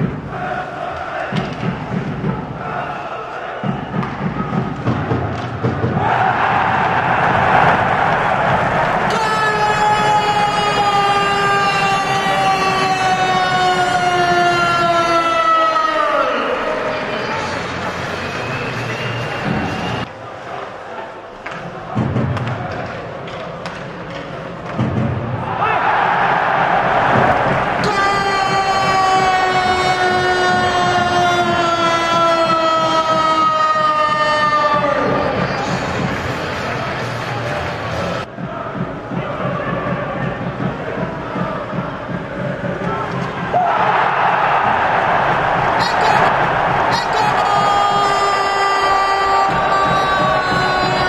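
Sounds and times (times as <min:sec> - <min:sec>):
crowd cheering: 0:00.0 - 0:23.9, 0:24.6 - 0:51.0
goal horn: 0:27.7 - 0:33.5, 0:45.8 - 0:51.0.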